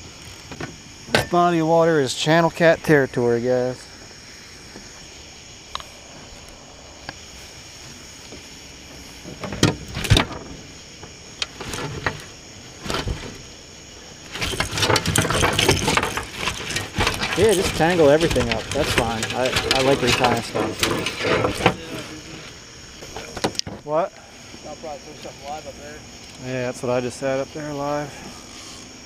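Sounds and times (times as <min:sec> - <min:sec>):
net mesh rattling rustle: 0:08.0 - 0:13.6, 0:14.2 - 0:23.6
knocks and clicks on boat deck: 0:23.0 - 0:23.9.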